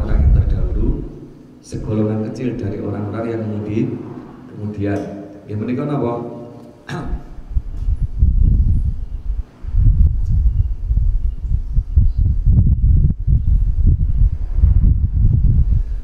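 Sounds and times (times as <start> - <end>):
low rumbling buffeting on microphone: 0.0 - 4.6, 7.0 - 16.0.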